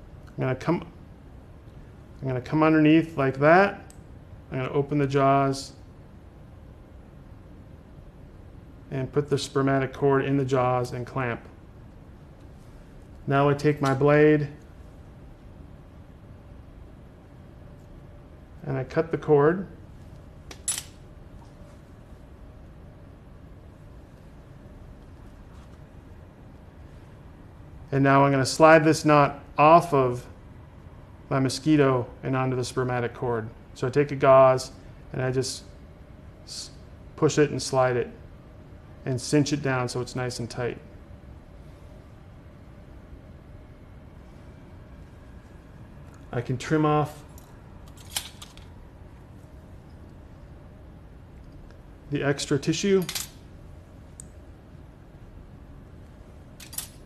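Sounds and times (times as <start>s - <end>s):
faint room hum: 0.0s - 57.0s
metal instruments clinking: 20.5s - 21.0s, 53.0s - 53.4s, 56.6s - 57.0s
metal instruments clicking: 56.6s - 57.0s.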